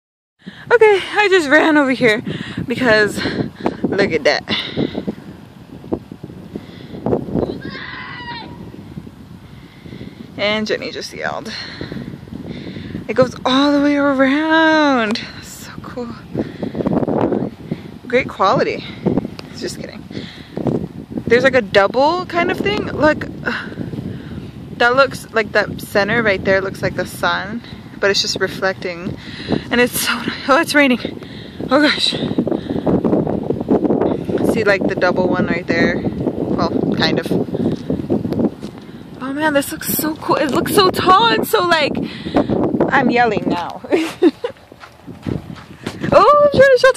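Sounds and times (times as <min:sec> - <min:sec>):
low wind rumble: 0:00.4 - 0:46.9
distant person yelling: 0:07.4 - 0:08.7
microphone handling bumps: 0:15.9 - 0:27.4, 0:28.8 - 0:46.9.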